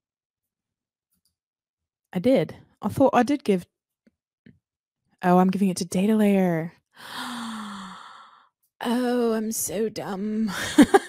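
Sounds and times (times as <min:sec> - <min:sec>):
woman sighing: 0:07.0 - 0:08.4.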